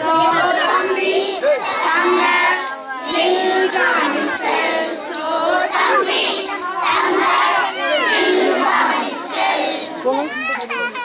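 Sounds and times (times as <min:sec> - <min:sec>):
children and women singing: 0:00.0 - 0:10.7
children and women shouting: 0:00.0 - 0:11.0.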